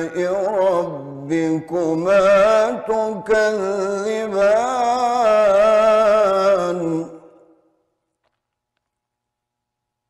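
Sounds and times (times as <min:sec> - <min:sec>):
man reciting melodically: 0:00.0 - 0:07.6.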